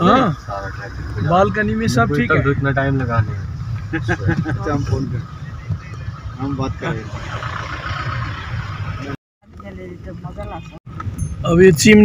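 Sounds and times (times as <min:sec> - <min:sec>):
voices: 0:00.0 - 0:10.8
car engine rumble and road noise: 0:00.0 - 0:12.0.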